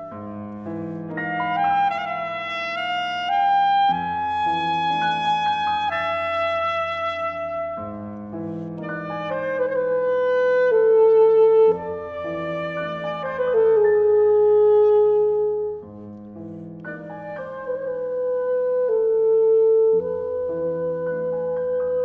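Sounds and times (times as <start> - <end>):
alto saxophone melody: 0.0 - 16.2, 16.8 - 22.0
soft piano chords: 0.0 - 22.0.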